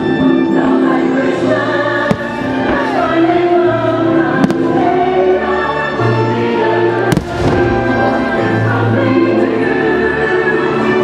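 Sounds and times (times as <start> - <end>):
choir singing: 0.0 - 11.0
orchestral chords: 1.3 - 11.0.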